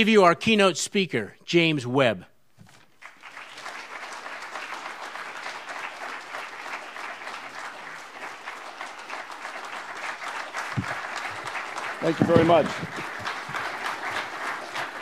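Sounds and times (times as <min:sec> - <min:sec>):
audience applauding: 0:02.9 - 0:15.0.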